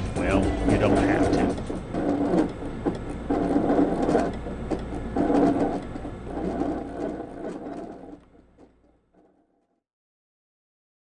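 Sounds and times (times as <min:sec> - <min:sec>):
handwriting robot motors: 0:00.7 - 0:08.2
pen moving over paper: 0:00.8 - 0:09.6.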